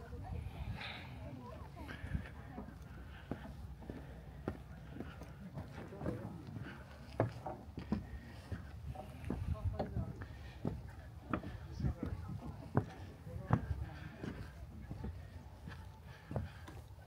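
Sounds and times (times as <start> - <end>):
footsteps walking: 1.9 - 17.0.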